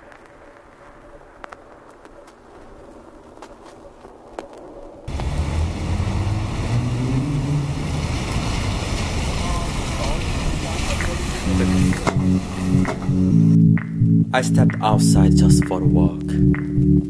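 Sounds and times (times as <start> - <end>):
tyres hissing on wet road: 5.1 - 12.9
bus engine rumble: 5.1 - 13.6
music with low bass line: 11.5 - 17.0.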